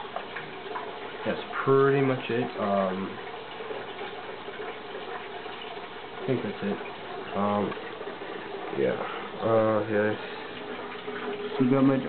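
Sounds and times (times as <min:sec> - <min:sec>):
running water: 0:00.0 - 0:12.0.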